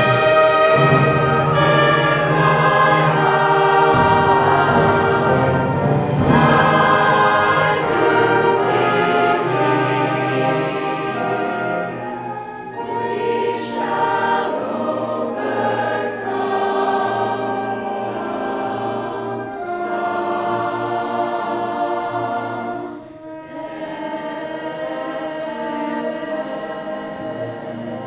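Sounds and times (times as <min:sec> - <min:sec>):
choir singing held chords: 0:00.0 - 0:28.0.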